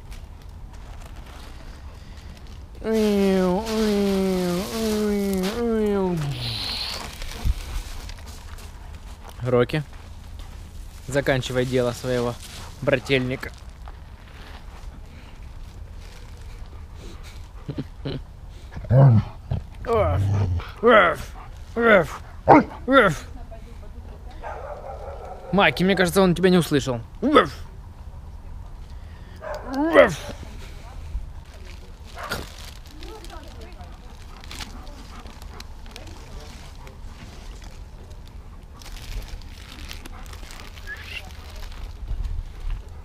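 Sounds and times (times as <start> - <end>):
dog barking: 22.5 - 22.8, 24.4 - 25.6, 29.4 - 30.4.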